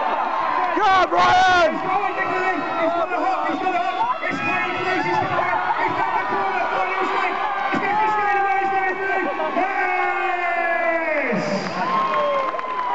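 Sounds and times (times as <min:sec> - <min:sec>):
crowd cheering and shouting: 0:00.0 - 0:12.9.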